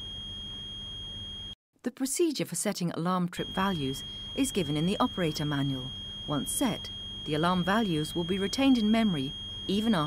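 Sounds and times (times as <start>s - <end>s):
high-pitched electronic alarm: 0.0s - 1.6s, 3.4s - 10.0s.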